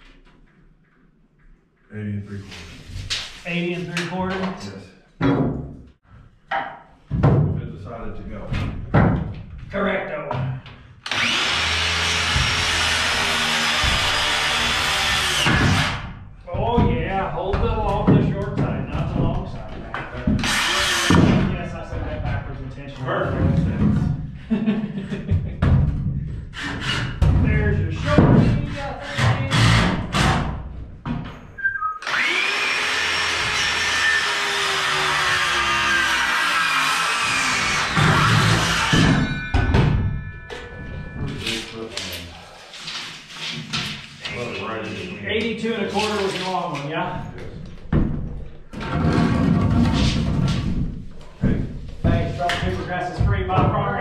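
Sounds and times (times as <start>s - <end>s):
power saw cutting wood: 11.0s - 16.0s, 20.4s - 21.4s, 32.0s - 39.2s
sharp knocks: 12.2s - 22.4s, 37.9s - 41.6s.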